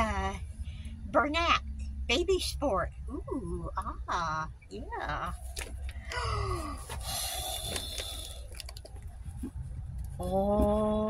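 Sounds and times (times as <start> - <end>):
packaging rustling and crinkling: 6.8 - 9.5.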